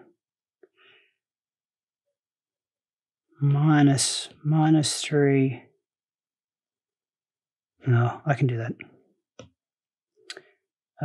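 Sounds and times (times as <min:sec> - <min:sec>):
man speaking: 0:03.4 - 0:05.6, 0:07.9 - 0:08.8.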